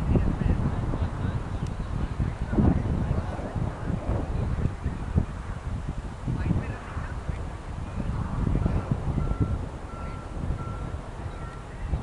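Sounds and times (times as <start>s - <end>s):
wind buffeting microphone: 0.0s - 12.0s
faint high beep: 9.2s - 11.7s.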